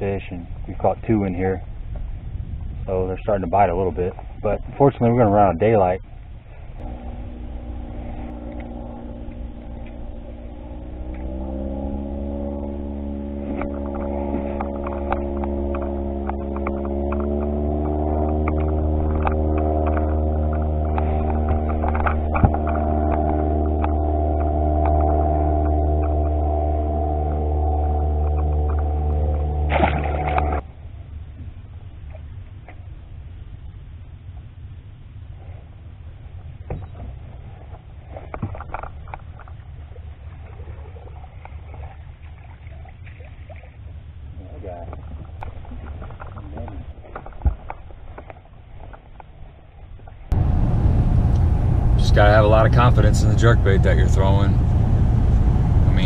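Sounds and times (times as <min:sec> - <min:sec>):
outboard motor running: 0:00.0 - 0:33.1, 0:35.2 - 0:56.0
water noise: 0:00.0 - 0:56.0
wind: 0:00.0 - 0:56.0.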